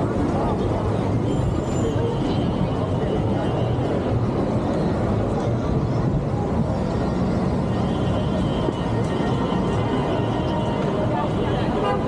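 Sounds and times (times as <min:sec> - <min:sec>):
low traffic rumble: 0:00.0 - 0:12.0.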